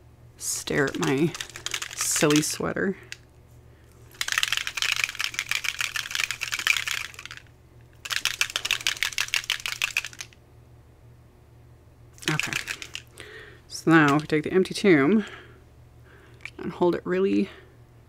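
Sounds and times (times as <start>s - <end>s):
spray bottle shaken rattling: 0.6s - 2.6s, 4.0s - 10.4s, 12.2s - 13.1s.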